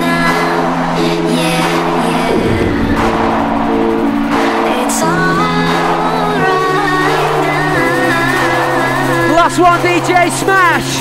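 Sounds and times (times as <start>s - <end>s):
hardcore dance music: 1.3s - 11.0s
falling synth pitch sweep: 2.1s - 6.5s.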